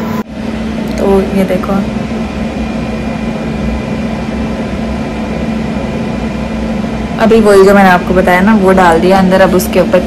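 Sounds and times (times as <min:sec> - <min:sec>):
faint high whine: 0:00.0 - 0:10.0
machine humming: 0:00.0 - 0:10.0.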